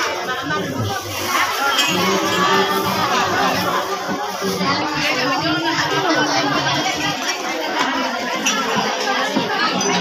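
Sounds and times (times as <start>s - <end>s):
women chattering: 0.0s - 10.0s.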